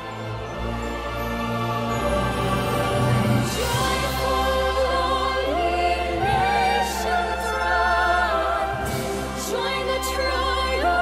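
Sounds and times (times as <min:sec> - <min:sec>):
orchestra playing: 0:00.0 - 0:11.0
choir singing held notes: 0:00.1 - 0:11.0
female voices singing: 0:03.5 - 0:11.0.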